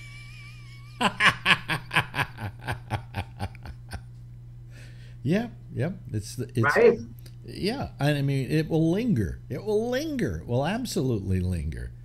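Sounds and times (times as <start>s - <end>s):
man laughing: 0.0s - 4.1s.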